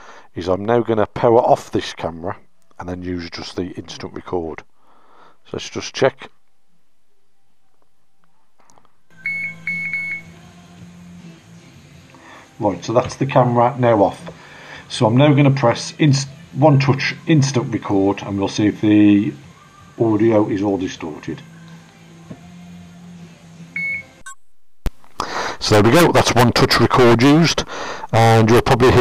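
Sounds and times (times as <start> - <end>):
low steady hum: 2.0 - 25.8
short high-pitched electronic beeps: 9.1 - 10.3.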